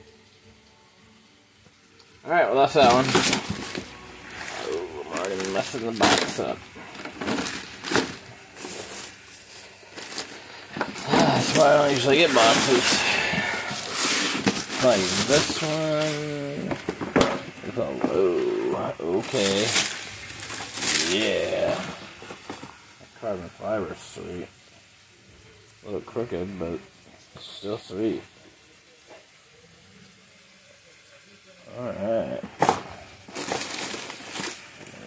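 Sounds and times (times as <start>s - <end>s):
faint steady hiss: 0.0s - 35.0s
plastic packaging rustling: 2.3s - 24.0s, 31.9s - 35.0s.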